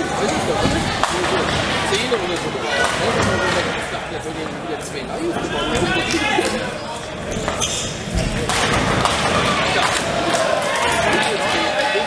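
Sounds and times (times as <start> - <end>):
voices of players: 0.0 - 12.0.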